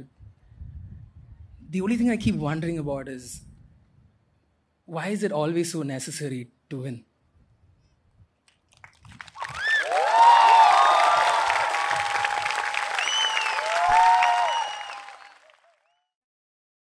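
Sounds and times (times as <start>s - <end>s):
audience applauding: 8.7s - 16.0s
whooping cheers: 9.3s - 16.0s.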